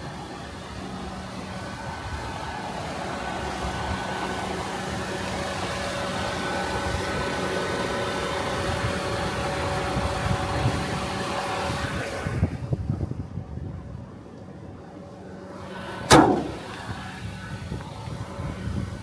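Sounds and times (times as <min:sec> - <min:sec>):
car engine idling: 0:14.0 - 0:19.0.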